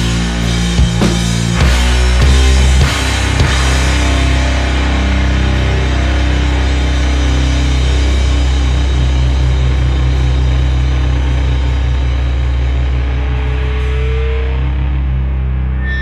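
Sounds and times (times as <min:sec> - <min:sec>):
heavy rock with distorted guitar: 0:00.0 - 0:16.0.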